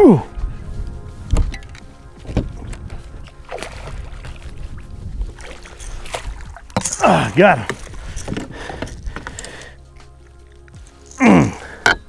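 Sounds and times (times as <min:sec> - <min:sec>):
background music: 0:00.0 - 0:12.0
fish splashing in water: 0:03.4 - 0:04.5, 0:05.4 - 0:07.1.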